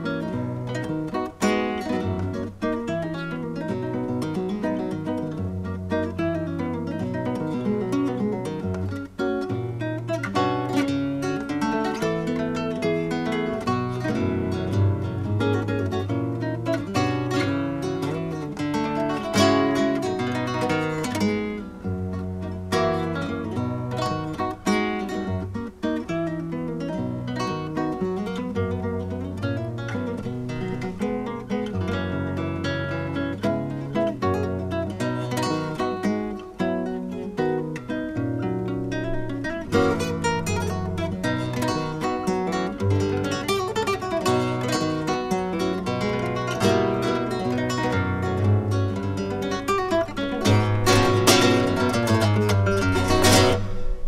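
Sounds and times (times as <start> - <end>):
flamenco guitar playing: 0.0 - 54.0.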